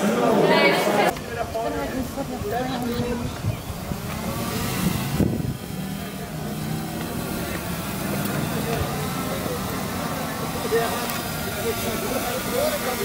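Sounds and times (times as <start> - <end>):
drone propellers humming: 3.2 - 13.0.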